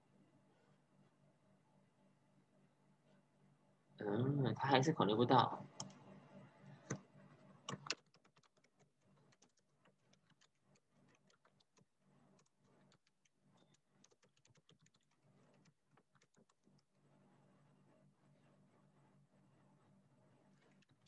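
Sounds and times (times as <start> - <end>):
computer keyboard typing: 7.6 - 16.9.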